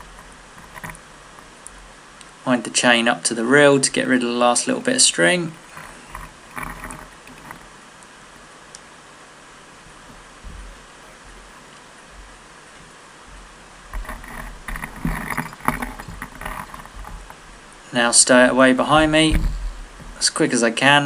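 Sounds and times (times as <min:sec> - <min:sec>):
anchor chain knocking and rattling: 0:00.0 - 0:01.6, 0:04.8 - 0:07.8, 0:13.9 - 0:17.7, 0:18.8 - 0:20.2
water noise: 0:00.0 - 0:02.4, 0:03.4 - 0:20.4
wind: 0:00.0 - 0:21.0.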